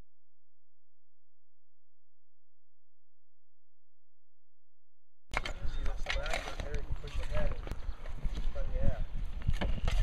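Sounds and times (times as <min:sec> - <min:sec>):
people talking indistinctly: 0:05.4 - 0:07.8.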